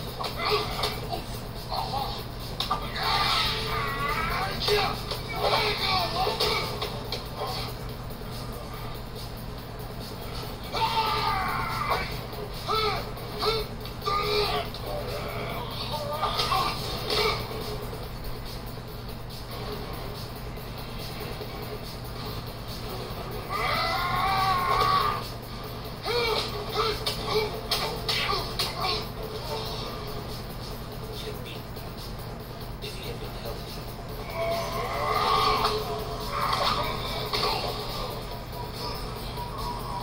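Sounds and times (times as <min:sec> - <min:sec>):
man yelling: 0:02.7 - 0:06.9, 0:10.7 - 0:17.5, 0:26.0 - 0:29.2.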